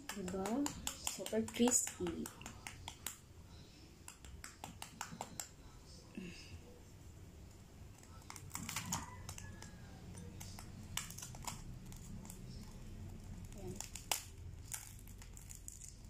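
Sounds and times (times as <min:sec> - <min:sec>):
crispy pork skin crunching: 0:08.1 - 0:16.0.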